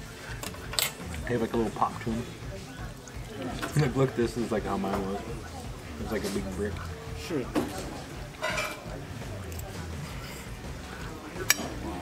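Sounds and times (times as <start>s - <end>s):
utensil clinking glass bowl: 8.4s - 8.8s.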